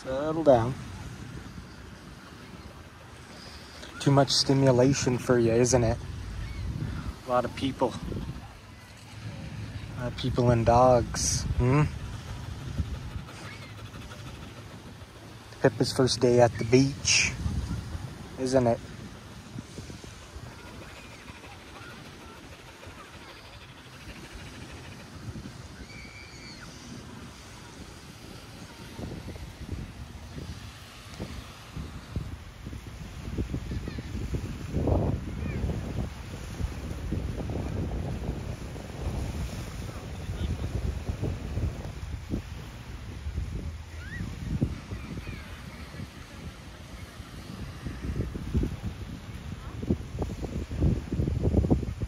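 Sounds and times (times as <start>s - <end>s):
small waves washing onto beach: 0.0s - 52.0s
wind buffeting microphone: 0.0s - 52.0s.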